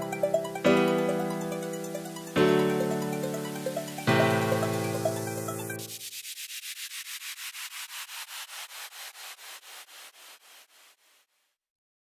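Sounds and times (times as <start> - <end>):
keyboard chord: 0.0 - 5.9
rhythmic hissing pulse: 0.0 - 6.2.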